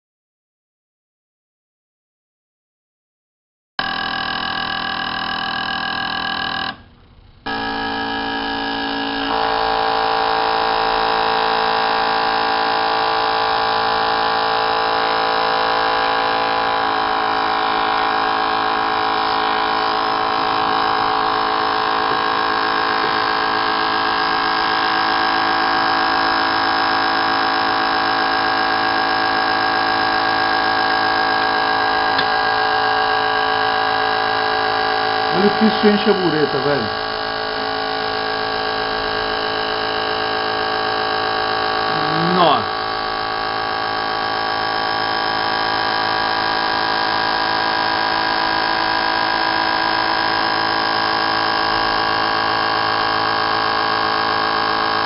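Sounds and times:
fuel injectors buzzing: 0:03.8 - 0:55.0.

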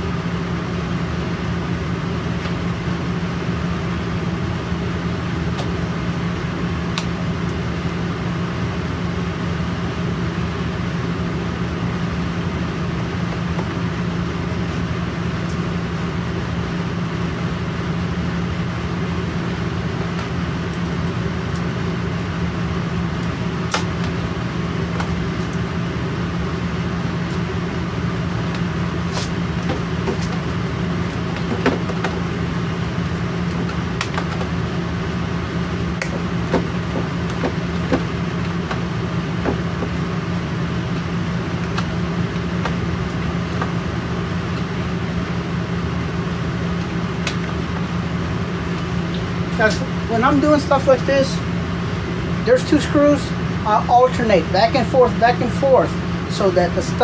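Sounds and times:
steady machine hum: 0:00.0 - 0:57.0.

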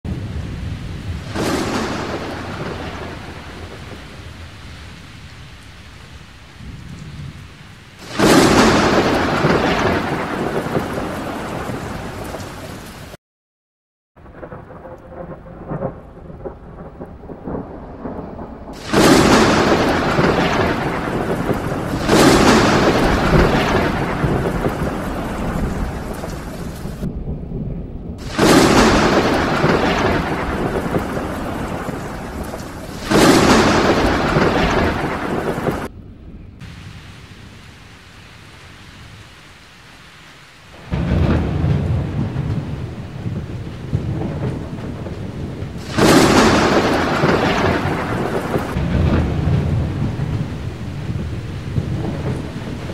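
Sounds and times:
rain falling steadily: 0:00.1 - 0:13.2, 0:14.2 - 0:52.9
thunder claps rumbling: 0:00.1 - 0:13.2, 0:14.2 - 0:52.9.

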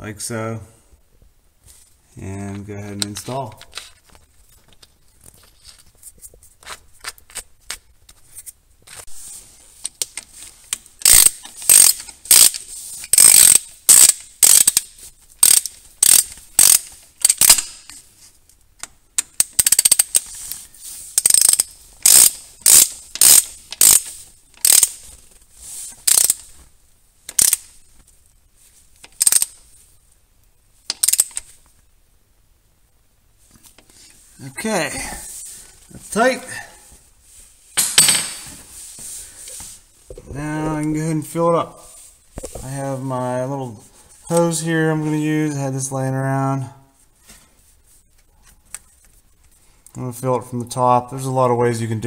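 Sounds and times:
hand ratchet clicking: 0:09.8 - 0:17.9, 0:18.8 - 0:20.5, 0:21.2 - 0:25.0, 0:26.0 - 0:26.5, 0:27.3 - 0:27.7, 0:29.0 - 0:29.6, 0:30.9 - 0:31.5.

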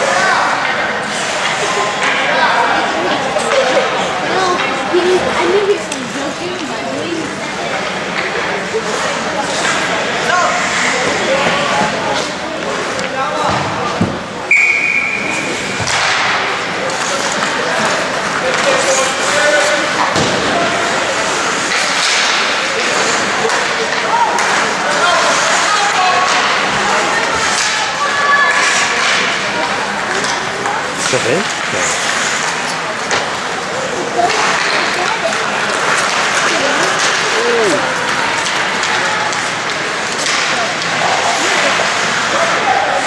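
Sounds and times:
rink crowd din: 0:00.0 - 0:43.0
voices of spectators and players: 0:00.0 - 0:43.0
puck and sticks slamming boards: 0:09.5 - 0:14.3, 0:15.6 - 0:27.9, 0:28.5 - 0:33.5, 0:34.2 - 0:42.8.

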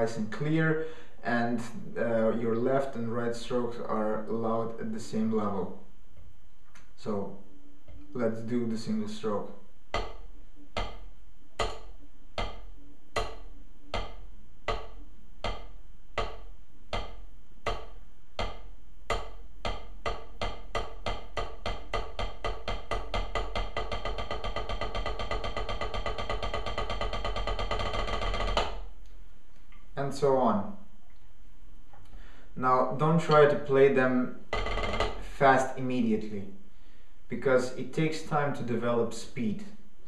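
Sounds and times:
drumsticks on practice pad roll: 0:09.9 - 0:28.9.

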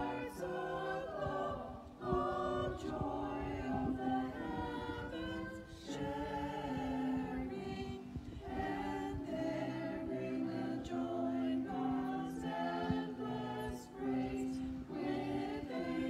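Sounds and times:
vocal group singing a hymn: 0:00.0 - 0:16.0.

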